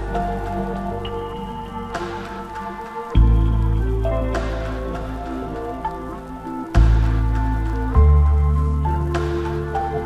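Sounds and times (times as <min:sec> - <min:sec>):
lofi hip hop music: 0:00.0 - 0:10.0
soft hiss: 0:00.0 - 0:10.0.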